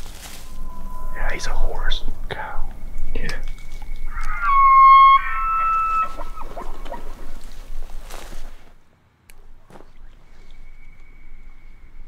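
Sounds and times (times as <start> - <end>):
elk bugling: 0.0 - 8.8
people whispering: 0.6 - 3.6.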